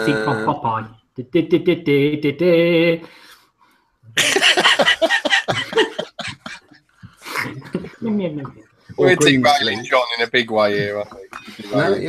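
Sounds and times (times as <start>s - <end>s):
men laughing hard: 4.2s - 6.6s.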